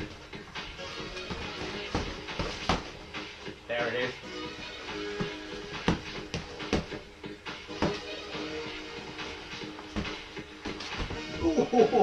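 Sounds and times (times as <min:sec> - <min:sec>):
background music: 0:00.0 - 0:12.0
boxing glove punches landing: 0:01.2 - 0:03.1, 0:05.1 - 0:07.0, 0:07.7 - 0:08.3, 0:09.7 - 0:11.4.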